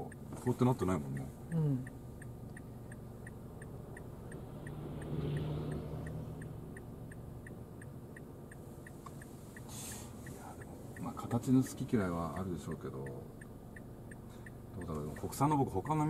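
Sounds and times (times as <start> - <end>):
car engine idling: 0.0 - 16.0
turn signal ticking: 0.0 - 16.0.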